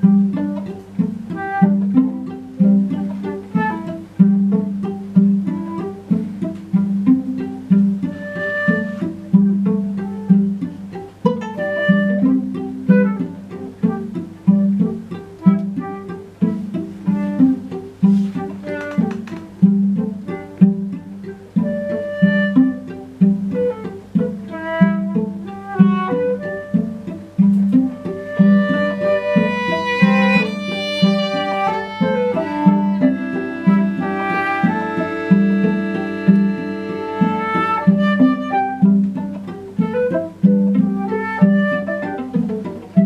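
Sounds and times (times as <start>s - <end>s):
plucked low strings ostinato: 0.0s - 43.0s
short high string notes: 0.0s - 43.0s
sustained bowed violin: 0.0s - 43.0s.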